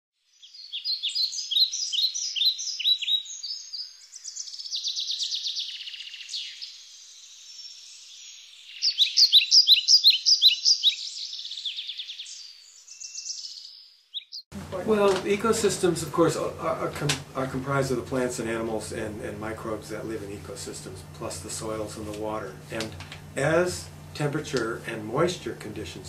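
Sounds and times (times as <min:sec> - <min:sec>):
buzzy bird trill: 0:00.2 - 0:14.5
songbirds chirping: 0:00.2 - 0:14.5.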